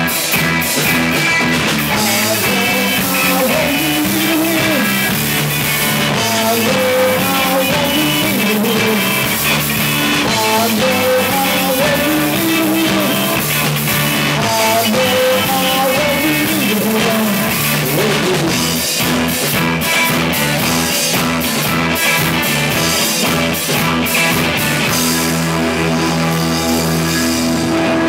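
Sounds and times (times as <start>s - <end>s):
live rock band playing: 0.0s - 28.0s.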